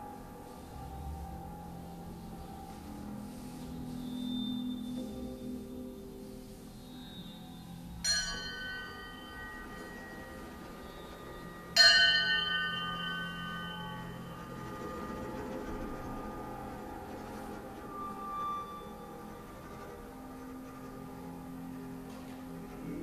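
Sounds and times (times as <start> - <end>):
low sustained drone: 0.0 - 23.0
metal percussion strike ringing: 6.8 - 21.5.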